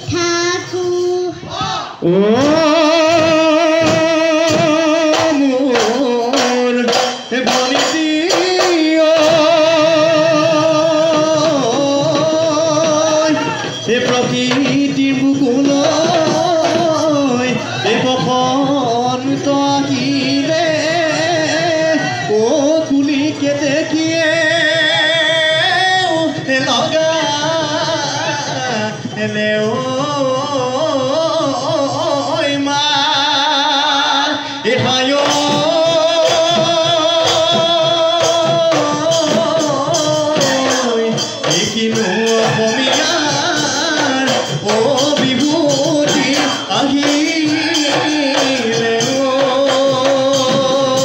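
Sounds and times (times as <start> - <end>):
dhol drums beating: 0.0 - 33.7, 34.6 - 51.0.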